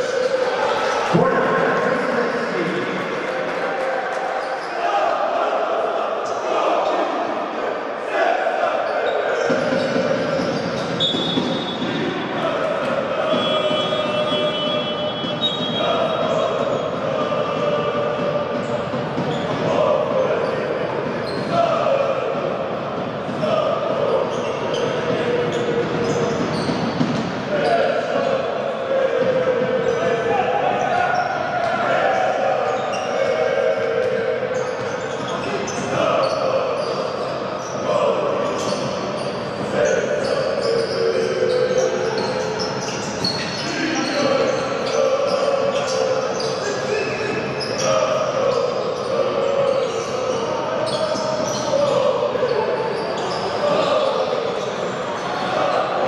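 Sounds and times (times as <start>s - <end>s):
din of voices: 0.0s - 10.6s.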